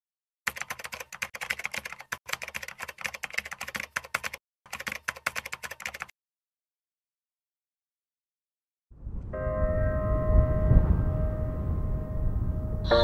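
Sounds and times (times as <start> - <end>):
keyboard key clicks: 0.5 - 6.1.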